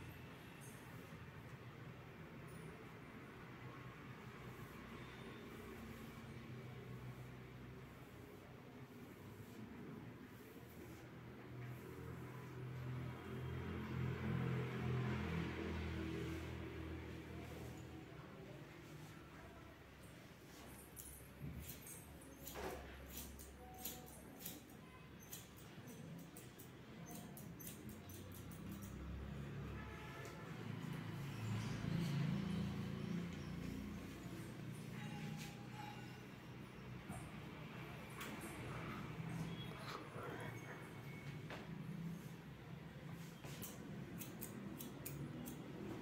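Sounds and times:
scissors snipping hair: 20.9 - 29.3, 43.4 - 46.0.

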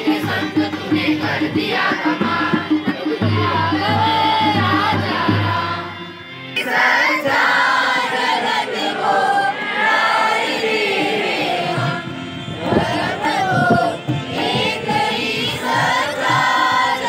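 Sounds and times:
students singing in chorus: 0.0 - 17.0.

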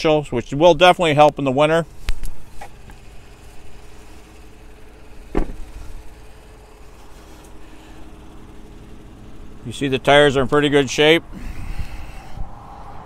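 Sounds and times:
vehicle engine idling: 0.0 - 13.0
thump: 5.3 - 5.7.

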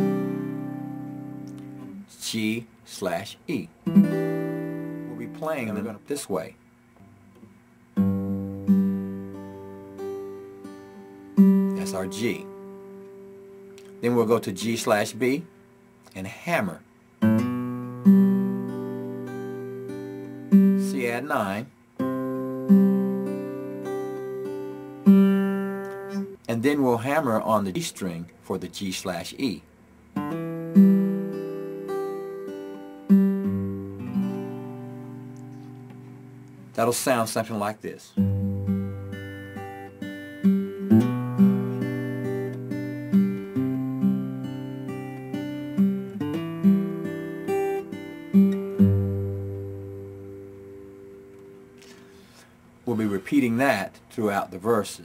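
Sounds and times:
electric guitar fingerpicking: 0.0 - 2.0, 3.8 - 6.2, 7.0 - 16.2, 17.2 - 21.1, 22.0 - 26.5, 30.2 - 36.8, 38.2 - 52.4.

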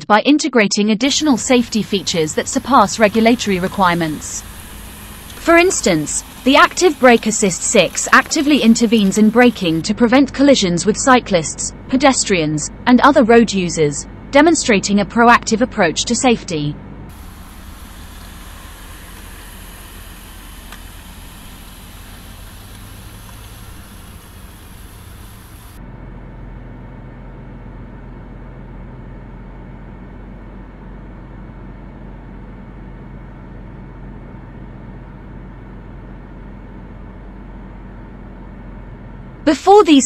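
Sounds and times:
low engine drone: 1.0 - 10.0, 17.1 - 29.4
road noise hiss: 1.1 - 9.8, 17.1 - 25.8.

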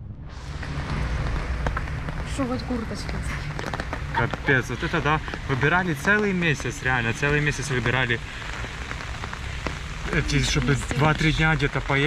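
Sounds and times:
heavy rain falling: 0.4 - 12.0
raindrops ticking on umbrella: 0.6 - 12.0.

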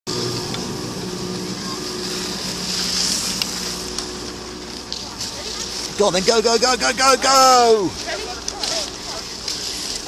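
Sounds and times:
steady low hum: 0.1 - 10.0
skis sliding over snow: 1.3 - 10.0.

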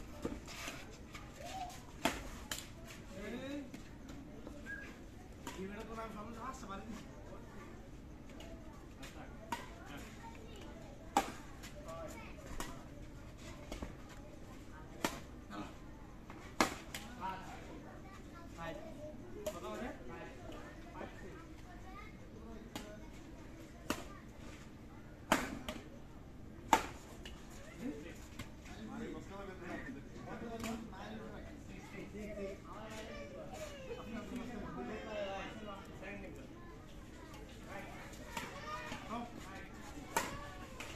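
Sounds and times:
racket hitting shuttlecock: 40.1 - 40.9.

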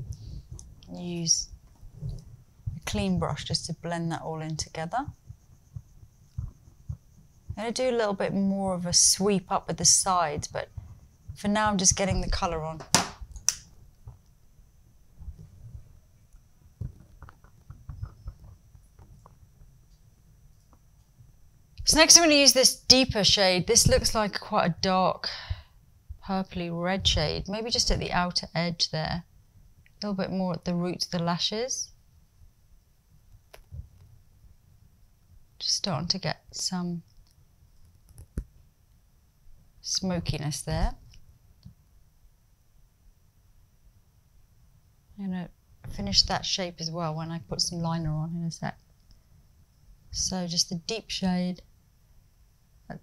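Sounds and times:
faint small clicks: 37.1 - 39.0, 48.8 - 49.2.

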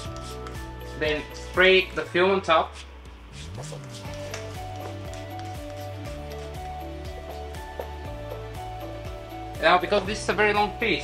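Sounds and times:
background music of held notes: 0.0 - 11.0.

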